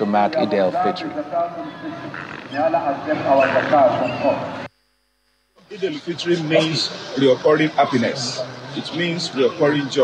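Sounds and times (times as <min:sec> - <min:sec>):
crowd gathered outdoors: 0:00.0 - 0:04.7, 0:05.6 - 0:10.0.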